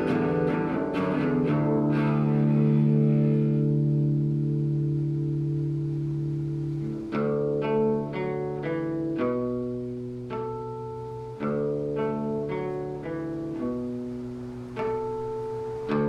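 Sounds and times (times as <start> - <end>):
acoustic guitar notes and chords: 0.0 - 16.0.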